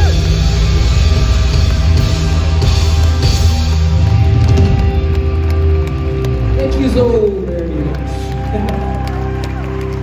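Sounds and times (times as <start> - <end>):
drum and cymbal hits: 0.0 - 5.3
rock band holding a chord: 0.0 - 7.5.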